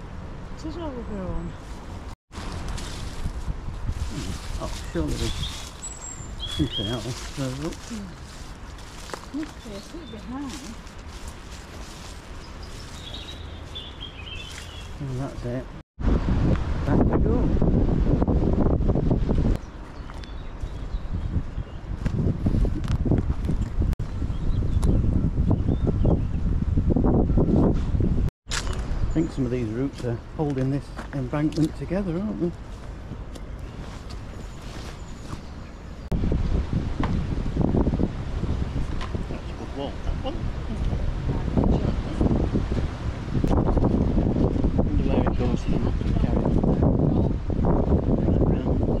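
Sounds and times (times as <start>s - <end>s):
wind buffeting microphone: 0.6s - 49.0s
footsteps on dirt path: 1.6s - 15.0s, 30.5s - 31.3s
faint birds chirping: 4.1s - 11.0s, 11.9s - 15.8s, 28.7s - 36.2s.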